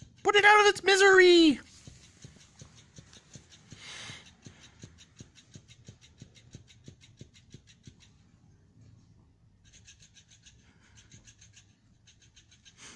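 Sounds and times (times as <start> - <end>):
toy fish flapping taps: 0.0 - 8.2, 9.6 - 12.9.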